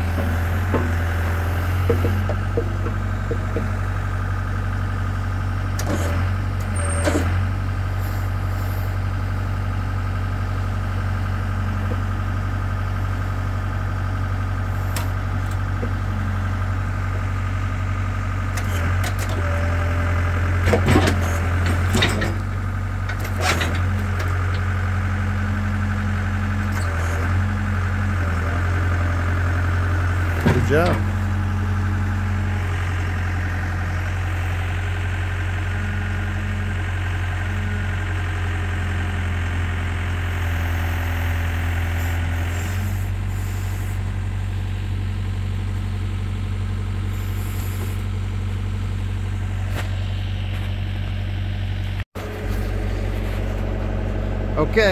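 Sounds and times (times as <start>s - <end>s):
hydraulic whine: 0.0s - 4.8s, 8.0s - 9.0s, 26.2s - 54.9s
diesel engine running: 0.0s - 54.9s.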